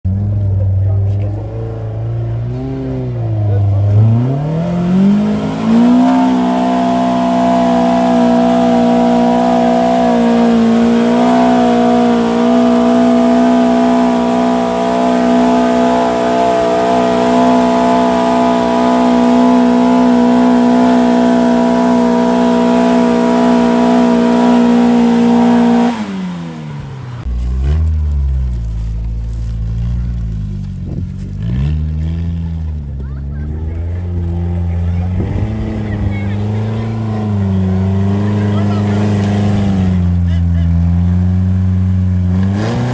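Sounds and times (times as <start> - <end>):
car engine revving: 0.1 - 42.9.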